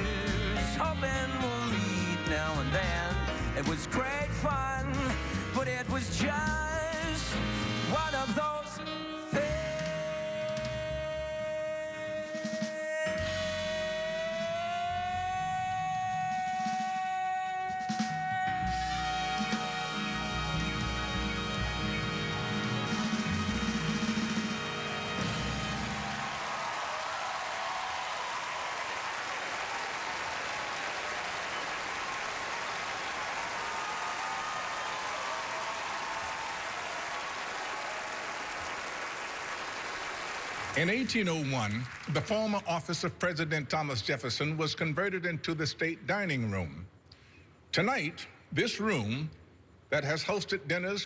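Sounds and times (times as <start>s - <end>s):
jazz band accompaniment: 0.0s - 15.3s, 17.8s - 26.4s
man singing long high note: 8.0s - 20.0s
audience applauding: 24.0s - 42.7s
faint cheering voices: 25.1s - 39.0s.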